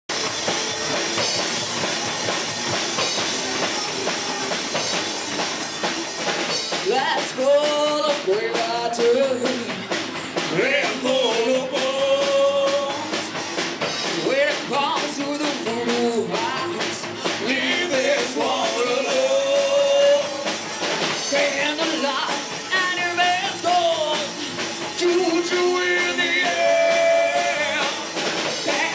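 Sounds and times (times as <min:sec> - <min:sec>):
loud drums: 0:00.0 - 0:28.9
electric guitar: 0:00.1 - 0:28.9.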